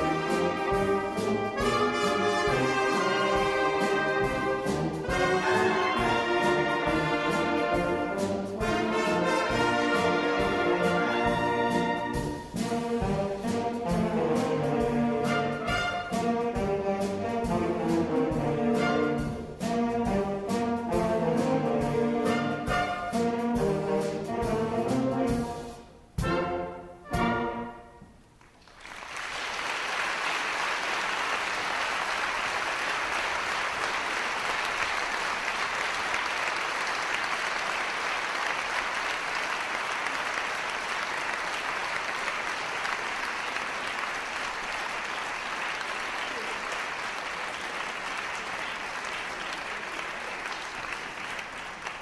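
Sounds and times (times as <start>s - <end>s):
audience applause: 28.4s - 52.0s.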